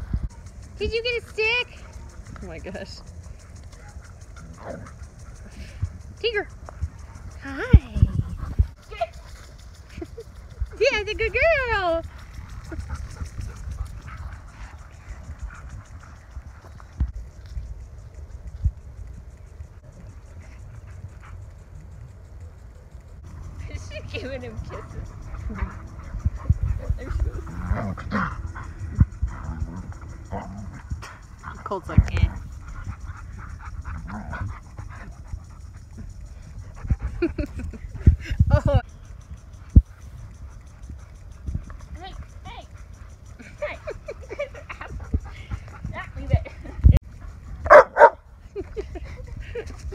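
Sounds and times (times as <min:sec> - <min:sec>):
dogs panting: 0:00.0 - 0:49.9
steady low rumble: 0:00.0 - 0:49.9.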